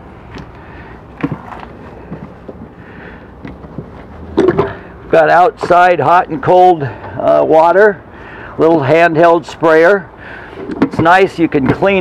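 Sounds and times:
handling noise: 0.3s - 2.8s.

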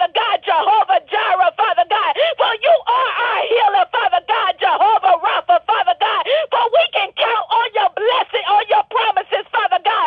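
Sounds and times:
person praying over telephone: 0.0s - 10.0s.

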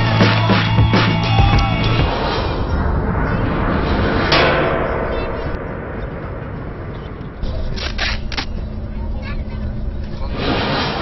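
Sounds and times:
loud rush of noise: 0.0s - 11.0s
wind noise: 1.4s - 11.0s.

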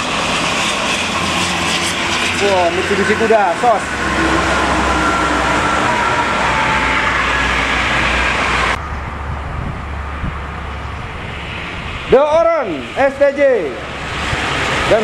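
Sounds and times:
highway traffic roar: 0.0s - 15.0s
low traffic rumble: 0.0s - 15.0s.

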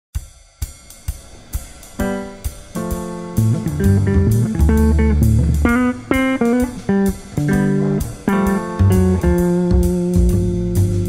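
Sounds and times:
drum kit cymbal and hi-hat hits: 0.1s - 11.0s
electric guitar chords: 1.3s - 11.0s
bass line: 2.8s - 11.0s.

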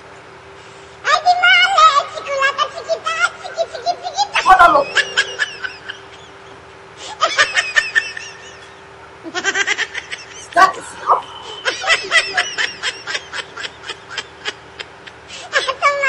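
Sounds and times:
faint steady hum: 0.0s - 16.0s
high-pitched comic laughter: 2.1s - 16.0s.

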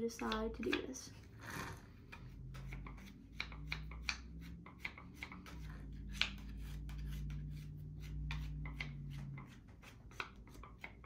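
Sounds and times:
clay tool rasping on wet clay: 0.0s - 11.0s.

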